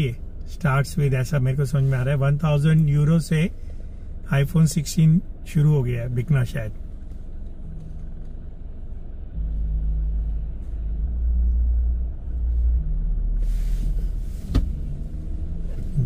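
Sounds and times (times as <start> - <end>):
car idling from inside cabin: 0.0 - 16.0
brief hiss: 13.4 - 14.9.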